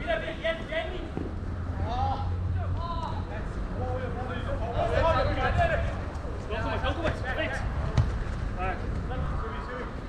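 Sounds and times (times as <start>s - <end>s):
football kicked with a thud: 7.9s - 8.2s.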